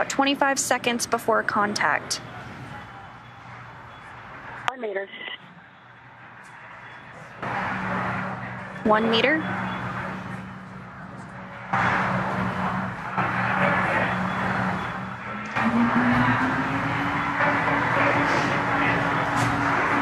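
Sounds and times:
steady electrical hum: 0.0 - 20.0
low tone rising in pitch: 15.3 - 19.0.

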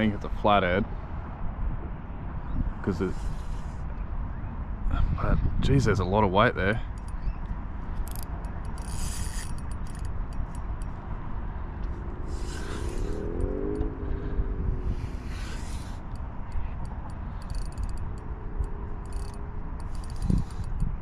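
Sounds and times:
wind rumble on microphone: 0.0 - 21.0
reel drag clicks: 6.9 - 11.0, 15.0 - 21.0
low wavering hum: 6.9 - 21.0
reel and line noise: 6.9 - 21.0.

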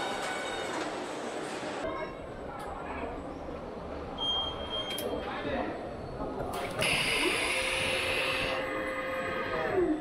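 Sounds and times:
machinery humming and hissing: 6.5 - 10.0.

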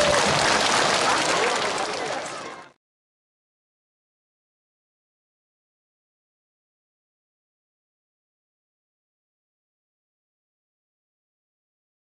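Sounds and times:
audience applauding: 0.0 - 2.8
voices: 0.0 - 2.8.

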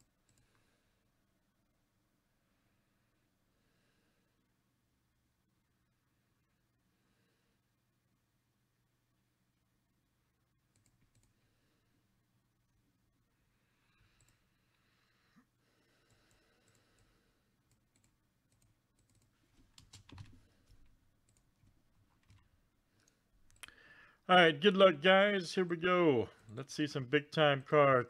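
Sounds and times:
faint clicks: 0.0 - 0.6, 10.7 - 11.4, 14.0 - 14.8, 16.0 - 23.8.

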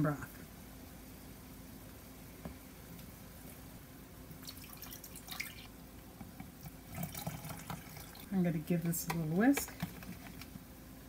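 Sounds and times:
liquid trickling and dripping: 4.3 - 5.7, 6.6 - 8.3.

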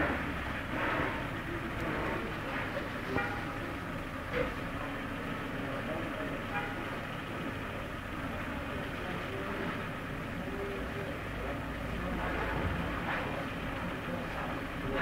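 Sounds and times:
faint distant voices: 0.0 - 15.0
low rumble and hiss: 0.0 - 15.0.

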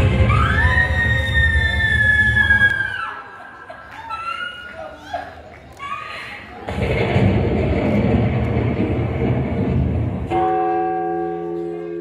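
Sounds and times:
dense rumbling noise: 6.7 - 10.3.

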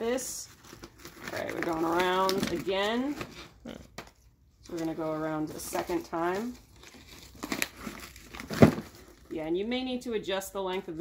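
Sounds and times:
twine pulled around package: 0.0 - 9.8
wrapping paper crinkling: 0.2 - 3.6, 4.5 - 9.4.

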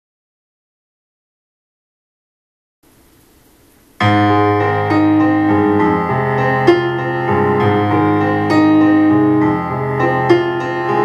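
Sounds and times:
piano chords: 3.9 - 11.0.

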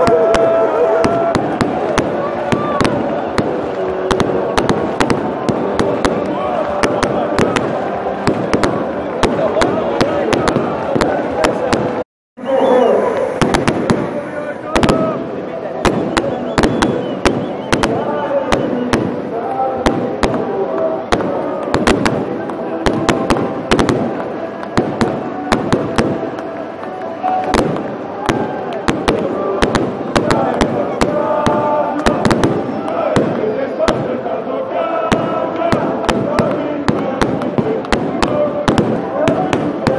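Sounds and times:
firecrackers cracking: 0.0 - 12.0, 13.2 - 39.9
crowd singing and chanting: 0.0 - 39.9.

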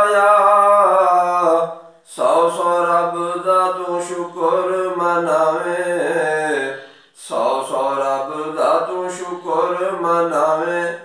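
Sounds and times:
breath: 6.8 - 7.2.

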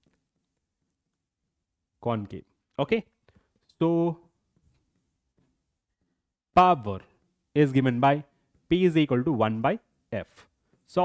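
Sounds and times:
man speaking: 2.0 - 4.3, 6.6 - 11.0.

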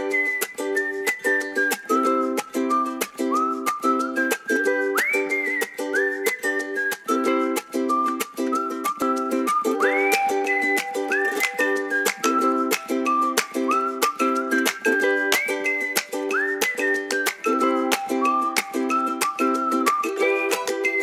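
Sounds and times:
strummed chords with steady beat: 0.0 - 21.0
whistled melody: 0.0 - 21.0.

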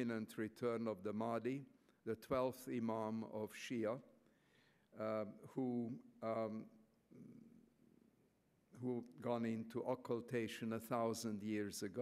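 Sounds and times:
man speaking at a microphone: 0.0 - 4.1, 4.9 - 7.3, 8.8 - 12.0.

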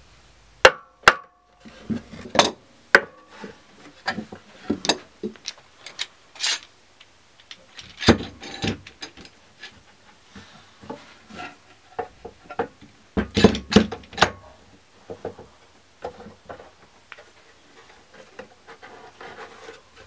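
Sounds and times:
clamps knocking and scraping on wood: 7.8 - 10.0, 10.8 - 20.0.

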